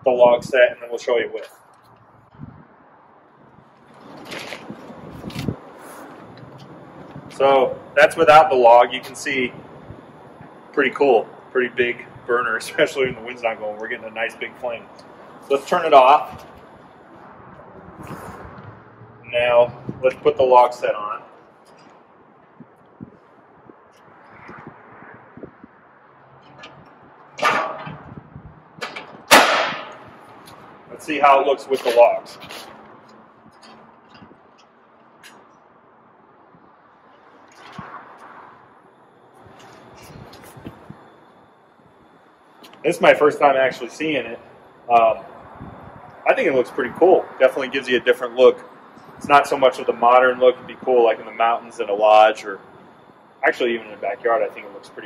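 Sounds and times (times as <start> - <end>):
gas burner rushing: 3.5 - 21.2, 37.2 - 55.0
loud ringing metal clangs: 27.3 - 28.1, 28.8 - 30.2.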